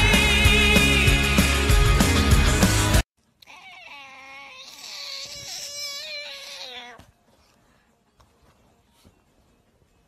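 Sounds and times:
cat yowling: 3.4 - 7.1.

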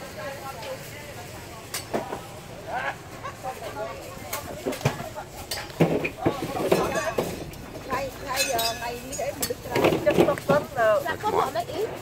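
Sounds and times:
people talking outdoors: 0.0 - 12.0.

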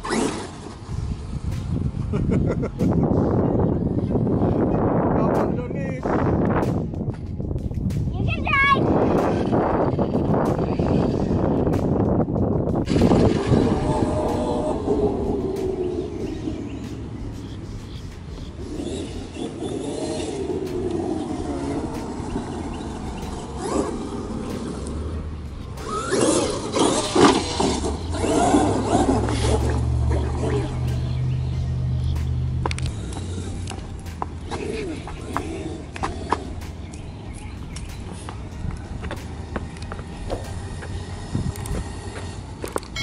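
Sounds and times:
rc truck motor whining: 0.0 - 1.4, 17.5 - 31.1, 32.0 - 36.6, 39.7 - 43.0.

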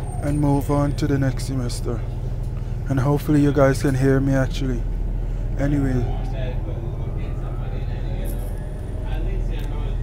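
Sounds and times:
bus engine rumble inside cabin: 0.0 - 10.0.

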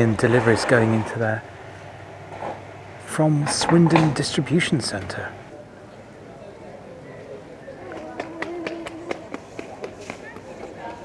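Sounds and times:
steady hum: 0.0 - 10.0
footsteps clicking on paving: 7.8 - 11.0.

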